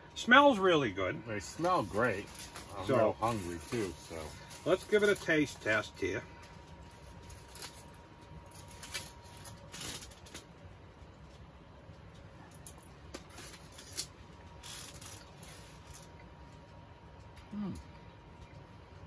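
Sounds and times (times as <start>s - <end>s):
aluminium foil crinkling: 1.4s - 17.3s.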